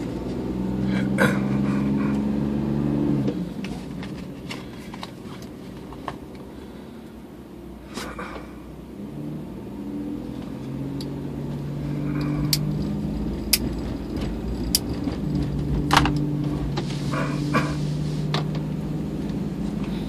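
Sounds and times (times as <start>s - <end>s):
car engine and road hum: 0.0s - 20.0s
knocks and rattles over rails: 12.8s - 17.6s.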